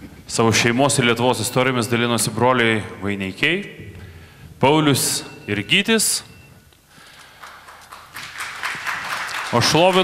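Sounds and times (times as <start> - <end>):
audience clapping: 7.1 - 10.0.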